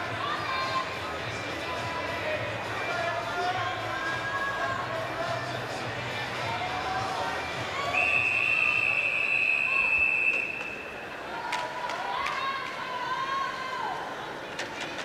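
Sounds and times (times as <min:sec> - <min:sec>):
crowd voices: 0:00.0 - 0:15.0
referee's whistle long blast: 0:08.0 - 0:11.1.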